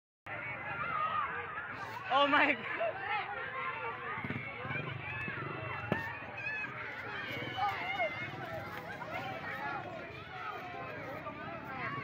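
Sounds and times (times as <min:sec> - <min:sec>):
crowd talking and calling out: 0:00.3 - 0:12.0.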